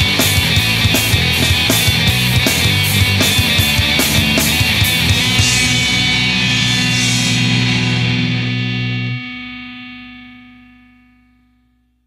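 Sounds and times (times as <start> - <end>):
punk band playing: 0.0 - 9.8
distorted electric guitar chord ringing: 0.0 - 12.0.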